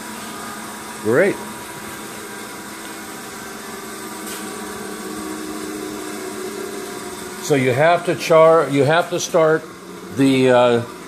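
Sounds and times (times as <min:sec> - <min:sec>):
machine motors humming and whirring: 0:00.0 - 0:11.0.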